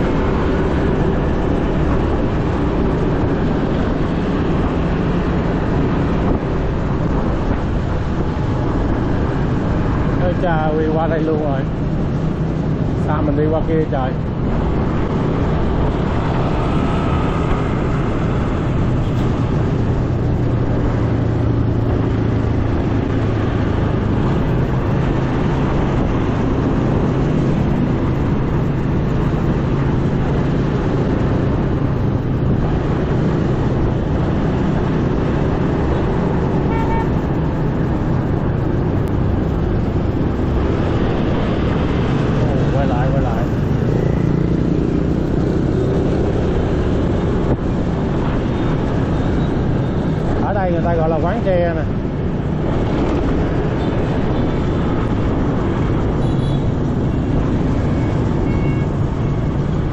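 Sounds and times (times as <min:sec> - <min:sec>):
rumble of motorbikes and cars: 0:00.0 - 0:59.9.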